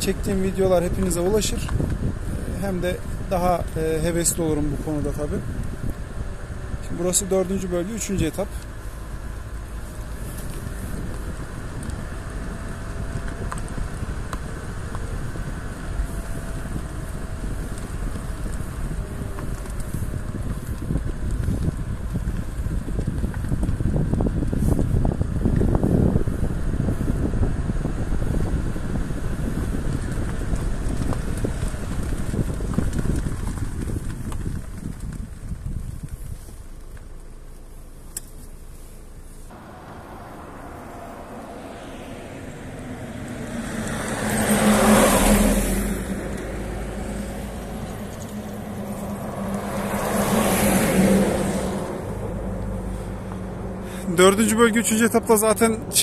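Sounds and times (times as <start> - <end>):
car driving along road: 0.0 - 56.0.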